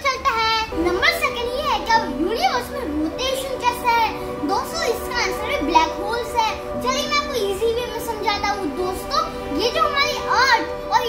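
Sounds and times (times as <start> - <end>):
child talking: 0.0 - 11.0
music of held notes: 0.7 - 11.0.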